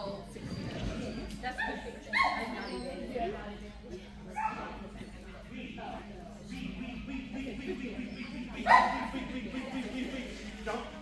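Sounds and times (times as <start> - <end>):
steady low hum: 5.3 - 11.0
dog barking: 8.6 - 9.2.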